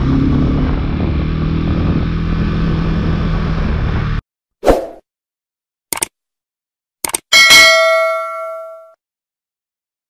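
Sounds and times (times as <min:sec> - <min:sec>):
short clicks: 0:05.9 - 0:06.2, 0:07.0 - 0:07.3
bell-like ding: 0:07.3 - 0:09.0.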